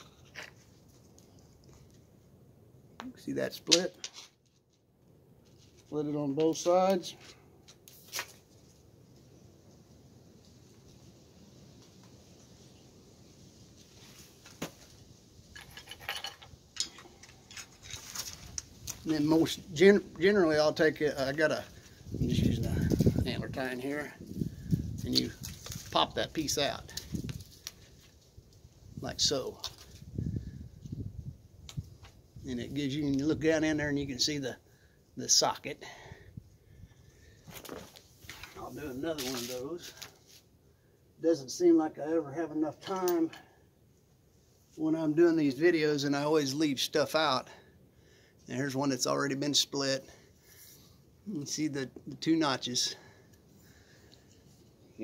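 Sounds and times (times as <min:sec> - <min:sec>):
rustle of movement: 0:04.0 - 0:20.3, 0:21.0 - 0:31.0, 0:36.8 - 0:40.9.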